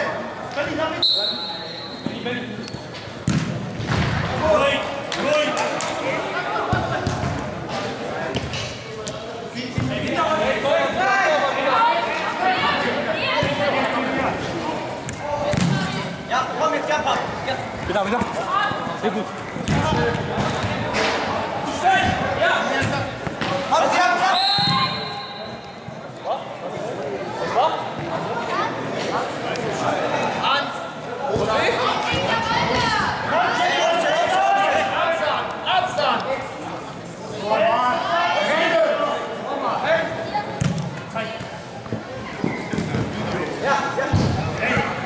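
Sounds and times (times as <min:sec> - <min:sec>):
spectators' voices: 0:00.0 - 0:45.0
football kicks and thuds: 0:03.2 - 0:04.2
players shouting: 0:31.3 - 0:36.6.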